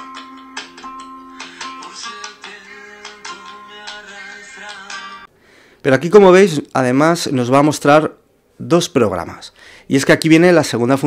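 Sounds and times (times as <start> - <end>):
radio music from phone: 1.3 - 5.3.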